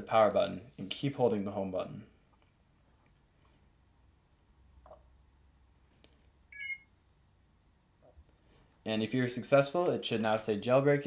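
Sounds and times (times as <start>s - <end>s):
high electronic beep: 6.6s - 6.9s.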